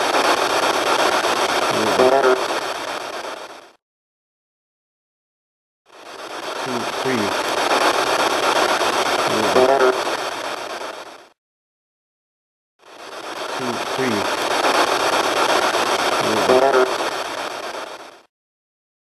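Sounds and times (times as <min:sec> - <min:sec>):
recorder hiss: 0:00.0 - 0:03.8, 0:05.9 - 0:11.4, 0:12.8 - 0:18.3
faint voices counting: 0:06.6 - 0:07.5, 0:09.3 - 0:10.1, 0:13.6 - 0:14.5.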